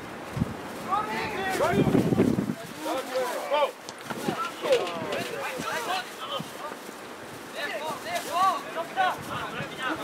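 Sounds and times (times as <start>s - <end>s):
players shouting short calls: 0.8s - 2.0s.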